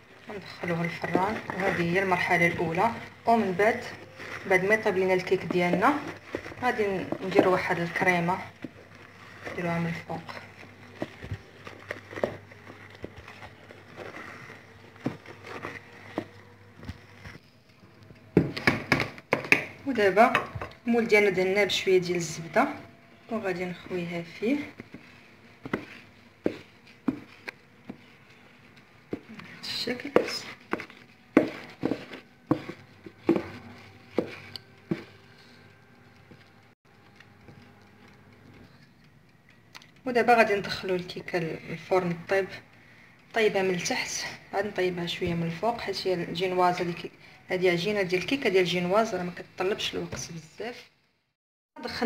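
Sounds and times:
spatula scraping batter in bowl: 0.4s - 16.4s, 23.8s - 35.3s
wooden spoon knocking on bowl: 30.0s - 35.2s.

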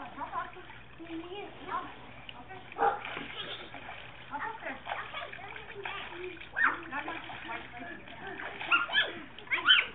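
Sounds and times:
water splashing: 0.0s - 9.9s
children calling out: 8.7s - 9.9s.

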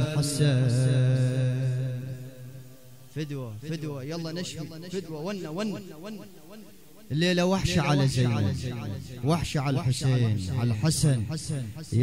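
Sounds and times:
man chanting a lament: 0.0s - 12.0s.

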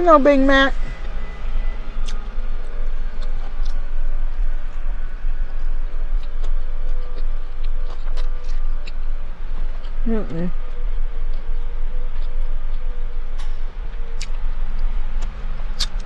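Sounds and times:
low rumble inside car: 0.0s - 16.0s
person chewing food: 2.0s - 10.0s, 10.7s - 16.0s.

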